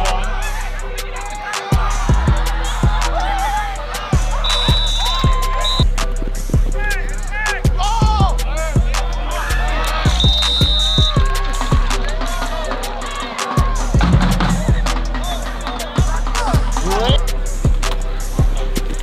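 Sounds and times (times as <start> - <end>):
background music with deep bass: 0.0 - 19.0.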